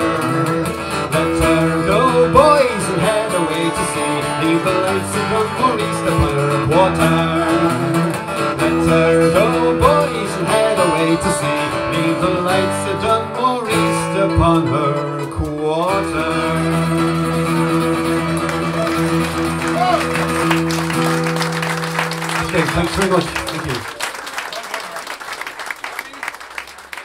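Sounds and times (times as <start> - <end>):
folk band playing: 0.0 - 23.8
voices holding notes: 22.3 - 23.9.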